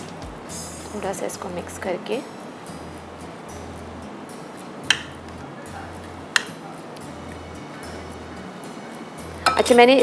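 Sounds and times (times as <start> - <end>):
soft background music: 0.0 - 10.0
metal tongs clinking on tray: 9.4 - 10.0.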